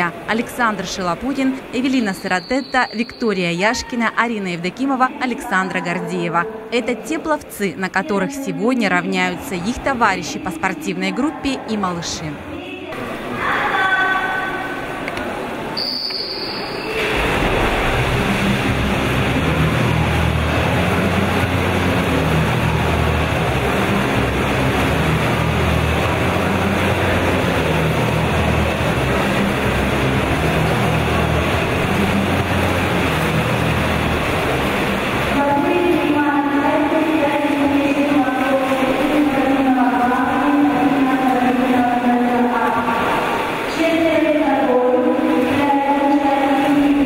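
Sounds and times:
crowd noise: 0:00.0 - 0:47.0
water splashing: 0:13.0 - 0:47.0
low hum: 0:14.8 - 0:41.4.

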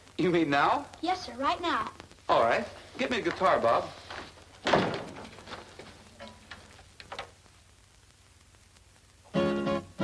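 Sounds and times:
film soundtrack hum: 0:00.0 - 0:10.0.

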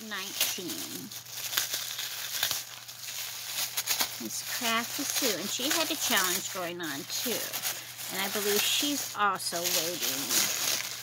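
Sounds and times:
sharp paper crackles: 0:00.0 - 0:11.0
tissue paper rustling: 0:00.0 - 0:11.0.

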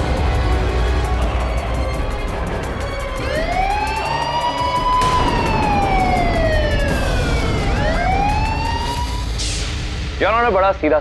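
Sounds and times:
siren wailing: 0:02.7 - 0:09.4.

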